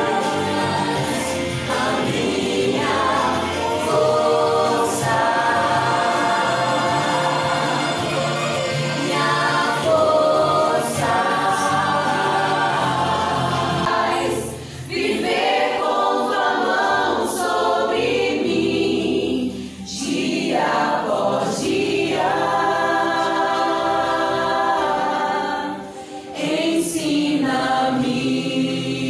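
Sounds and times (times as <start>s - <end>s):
choir singing: 0.0s - 29.0s.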